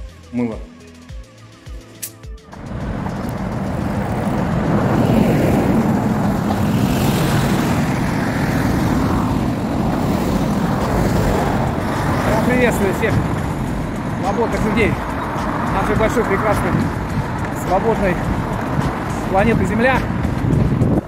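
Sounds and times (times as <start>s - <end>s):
roar of street traffic: 2.5s - 21.0s.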